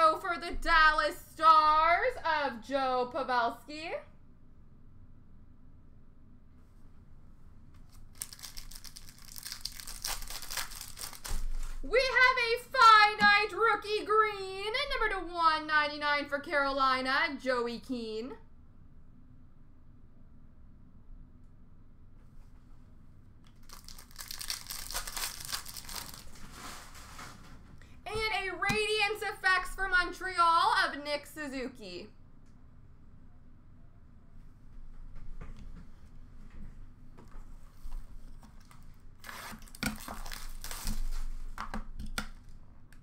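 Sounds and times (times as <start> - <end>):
plastic packaging crinkling: 7.9 - 11.9, 23.5 - 27.2, 38.5 - 41.6.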